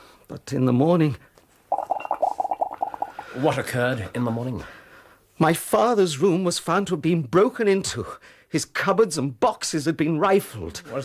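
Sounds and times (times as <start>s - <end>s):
liquid bubbling: 1.7s - 3.4s.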